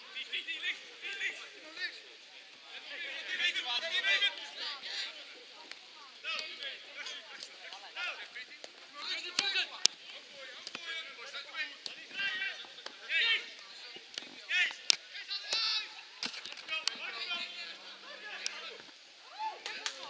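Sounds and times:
footballers shouting calls: 0.0 - 20.0.

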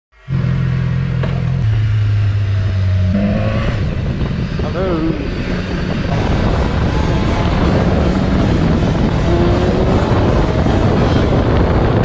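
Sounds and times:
motorcycle engine riding off: 0.2 - 12.0.

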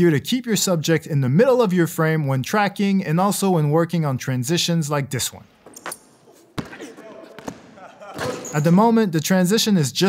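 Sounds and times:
basketball bouncing on gym floor: 5.6 - 8.6.

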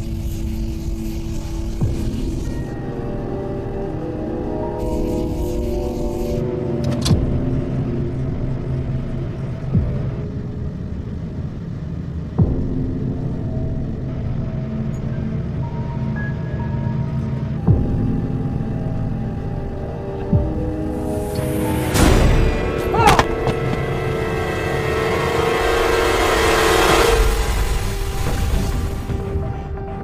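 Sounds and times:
tense held chords: 1.6 - 30.0
deep rumble: 6.5 - 29.6.

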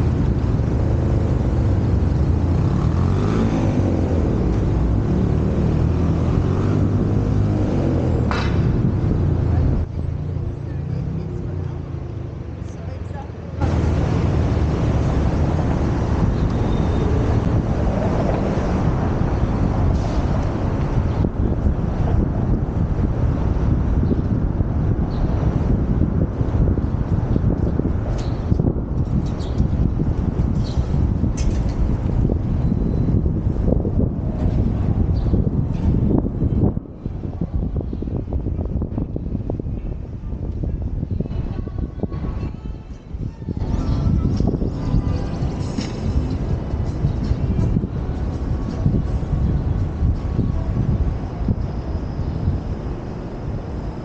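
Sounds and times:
city traffic: 0.0 - 54.0
wind buffeting microphone: 0.0 - 54.0.

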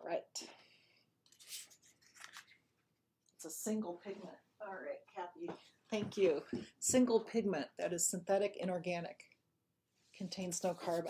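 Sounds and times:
paper card scraping on table: 10.2 - 11.0.

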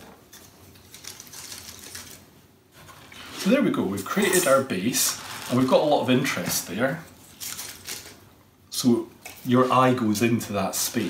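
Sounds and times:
pine cones clicking and rustling: 0.3 - 2.3.

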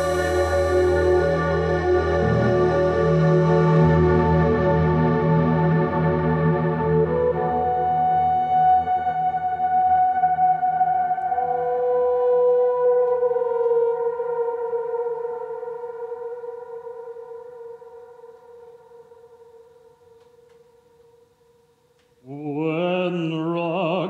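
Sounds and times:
synthesizer drone: 0.0 - 19.4
man singing operatically: 22.2 - 24.0.

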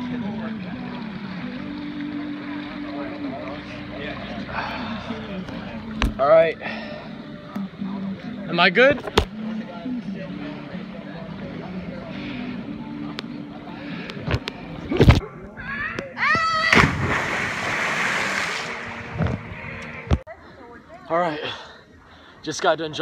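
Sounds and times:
water splashing: 16.6 - 20.2.

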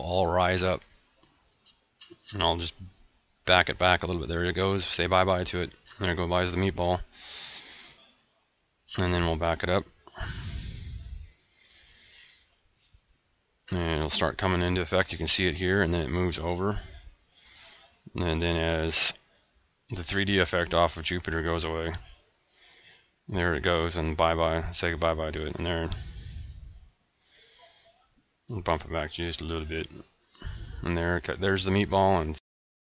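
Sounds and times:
man breathing into microphone: 7.1 - 8.0, 10.1 - 12.5, 16.8 - 18.0, 25.9 - 27.9, 30.4 - 30.9.

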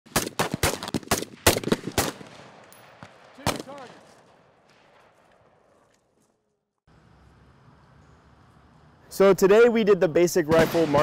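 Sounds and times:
rifle shots: 0.1 - 5.8, 10.5 - 11.0.

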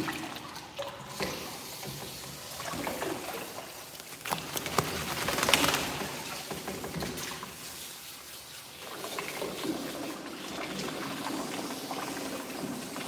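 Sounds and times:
water splashing: 0.0 - 13.0
wet fur rubbing and sloshing: 2.4 - 13.0.

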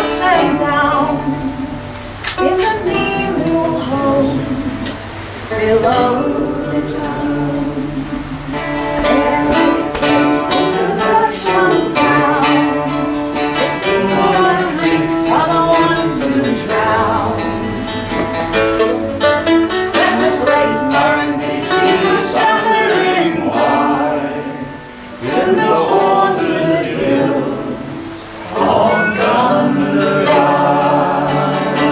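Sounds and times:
acoustic guitar strummed chords: 0.0 - 31.9
mandolin strumming: 0.0 - 31.9
woman singing: 0.0 - 31.9
man singing: 19.9 - 31.9.

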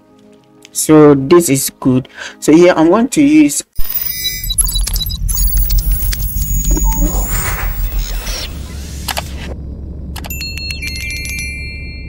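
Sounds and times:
sharp clicks: 3.8 - 9.4
low steady hum: 4.5 - 12.0
bell ringing bright tones: 10.3 - 12.0.

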